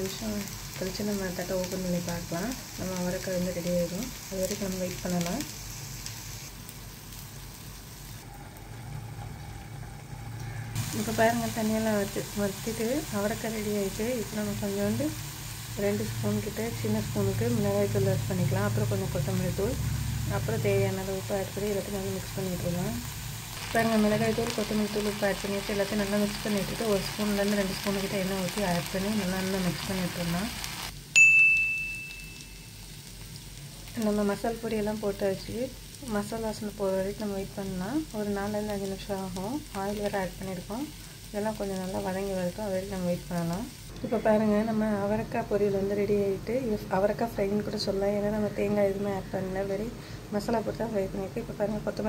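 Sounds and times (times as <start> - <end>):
beans sizzling in oil: 0.0 - 31.2, 31.9 - 49.1
bright metallic ding: 31.1 - 32.8.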